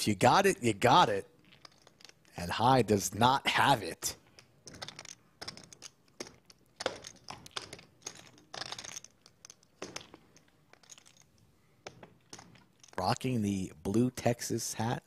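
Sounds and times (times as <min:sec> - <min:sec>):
poker chips clicking: 0:01.4 - 0:02.3, 0:04.3 - 0:13.0.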